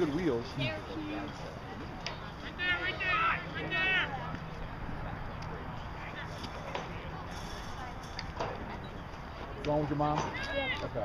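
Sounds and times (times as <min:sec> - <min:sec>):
distant voices calling out: 0:00.0 - 0:11.0.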